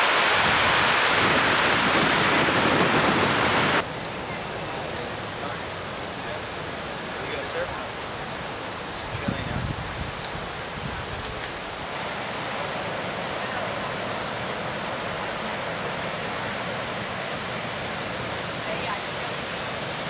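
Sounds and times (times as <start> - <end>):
ocean surf rushing: 0.0 - 20.0.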